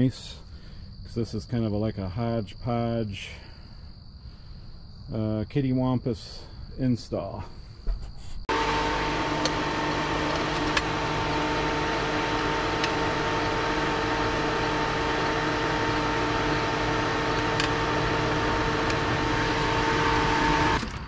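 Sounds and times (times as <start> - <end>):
machine hum with fan noise: 8.5 - 21.0.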